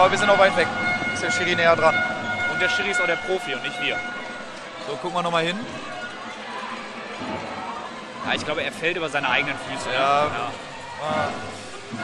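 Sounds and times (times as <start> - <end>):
sports hall background noise: 0.0 - 12.0.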